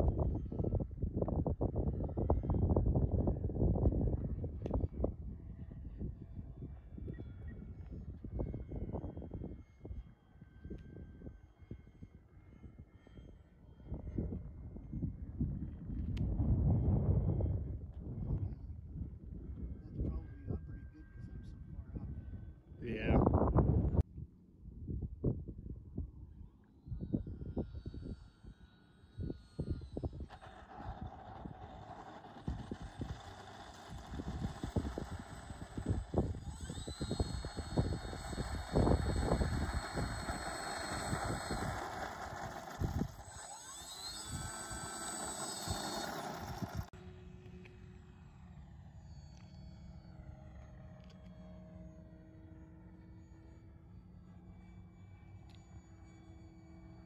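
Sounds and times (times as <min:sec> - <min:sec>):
wind buffeting microphone: 0:00.0 - 0:10.0, 0:12.6 - 0:20.8, 0:29.2 - 0:46.9
model plane motor whine: 0:00.0 - 0:24.0, 0:25.9 - 0:57.0.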